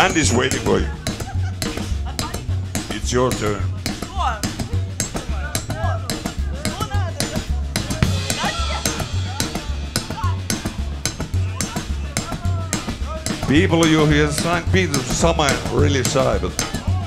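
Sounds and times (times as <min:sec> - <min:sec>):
bass line: 0:00.0 - 0:17.0
drum beat: 0:00.0 - 0:17.0
voices calling out: 0:00.0 - 0:17.0.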